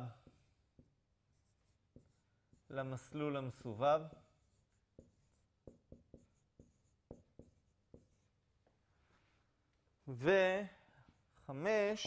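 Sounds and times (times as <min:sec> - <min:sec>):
marker writing on whiteboard: 0:00.0 - 0:08.8.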